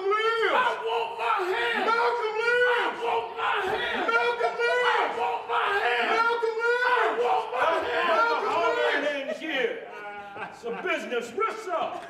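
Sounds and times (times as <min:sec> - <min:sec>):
men shouting: 0:00.0 - 0:11.9.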